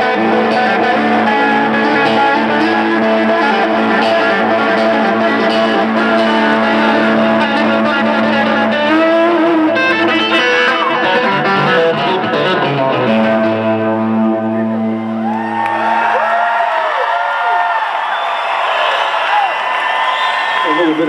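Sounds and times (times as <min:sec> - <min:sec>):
electric guitar solo: 0:00.0 - 0:18.0.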